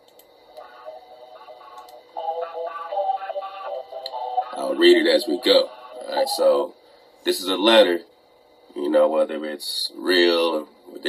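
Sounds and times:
faint video audio through speakers: 0:00.0 - 0:11.0.

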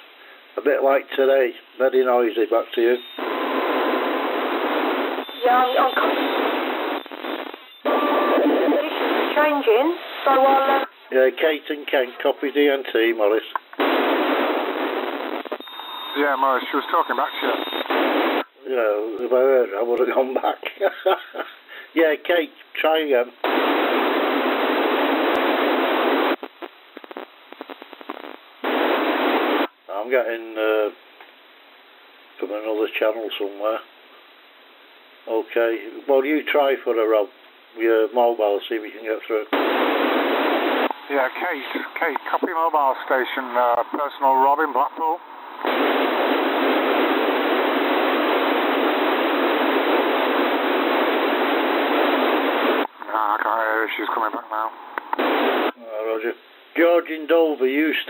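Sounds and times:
radio receiver hiss: 0:00.0 - 0:19.0, 0:23.4 - 0:31.0, 0:37.8 - 0:56.9
faint radio crackling: 0:00.6 - 0:31.3, 0:35.2 - 0:58.0
voice over radio: 0:16.2 - 0:17.9, 0:41.1 - 0:45.2, 0:53.0 - 0:54.8.

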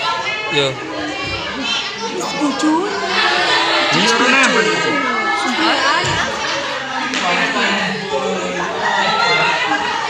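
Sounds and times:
children talking and calling: 0:00.0 - 0:10.0.

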